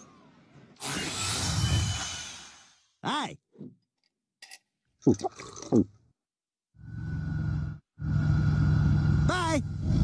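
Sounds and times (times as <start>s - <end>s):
car engine and road noise: 6.8s - 10.0s.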